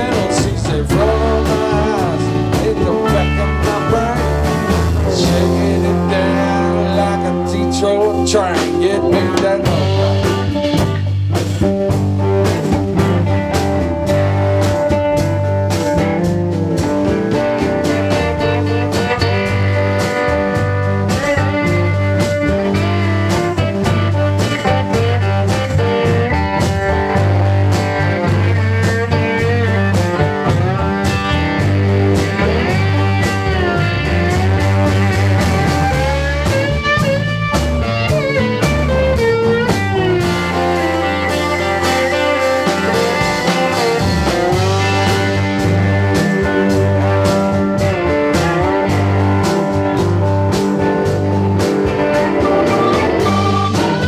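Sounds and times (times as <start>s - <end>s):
electric guitar: 0.0s - 54.0s
keyboard: 0.0s - 54.0s
sliding steel guitar notes: 0.0s - 54.0s
steady bass line: 0.0s - 54.0s.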